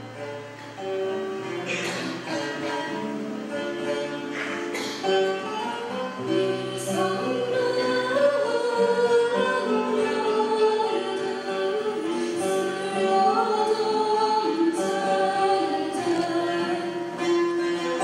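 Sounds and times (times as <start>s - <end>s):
choir singing: 6.2s - 18.0s.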